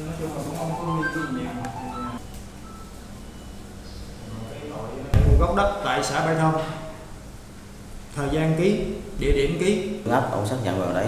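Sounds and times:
background music: 0.5 - 2.2.

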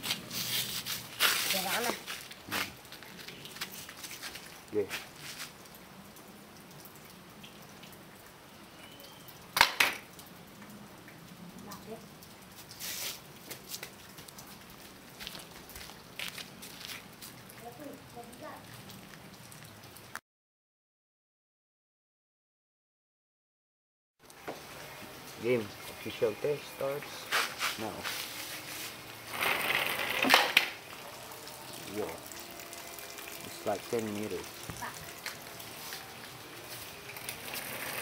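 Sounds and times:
dripping water: 1.1 - 20.2, 24.2 - 28.0, 30.3 - 38.0.

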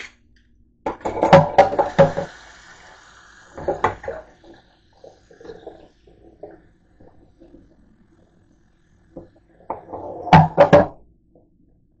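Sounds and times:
dishes clattering in sink: 0.9 - 2.3, 9.7 - 10.9
tap water running: 0.9 - 11.0.

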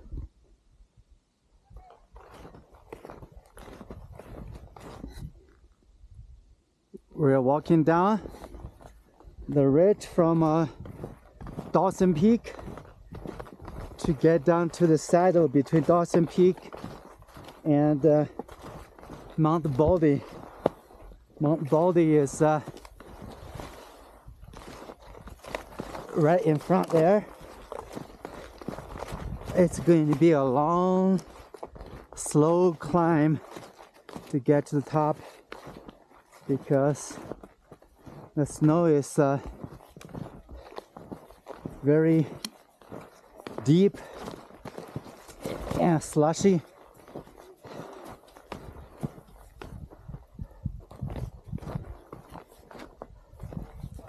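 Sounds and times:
footsteps in snow: 1.7 - 5.8, 6.9 - 54.0.

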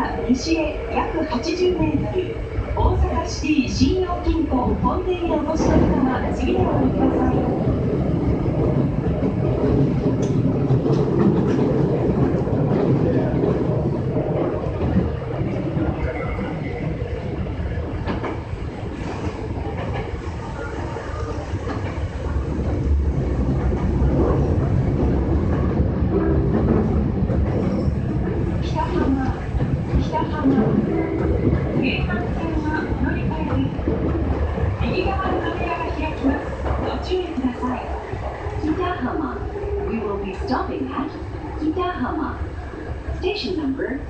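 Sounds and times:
train wheels rumbling on rail: 0.0 - 44.0.

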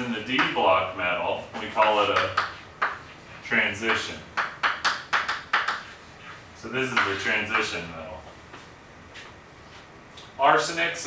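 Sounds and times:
chalk tapping and scraping: 1.6 - 7.8.

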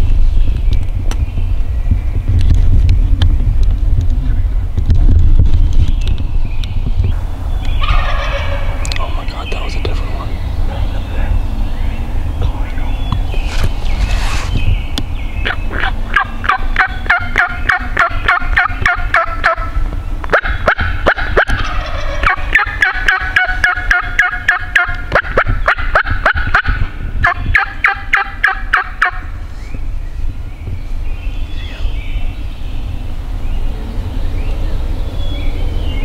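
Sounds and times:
turkeys gobbling: 7.8 - 9.0, 15.4 - 19.7, 20.3 - 29.3.

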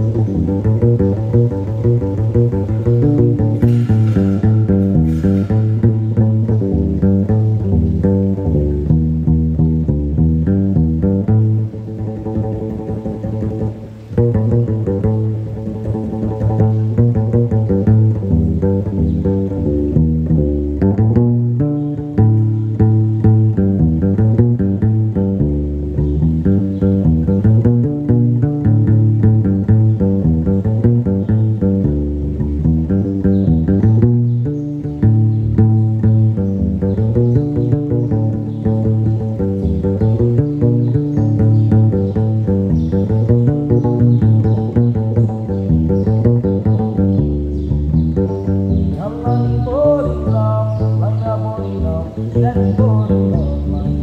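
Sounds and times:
plucked bass lute: 0.0 - 54.0.

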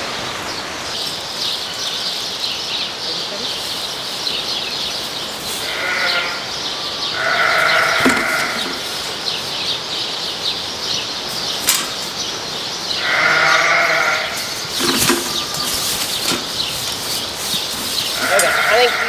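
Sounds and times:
high chirping: 0.5 - 19.0
sheep bleating: 5.6 - 9.2, 13.0 - 16.0, 18.2 - 19.0.

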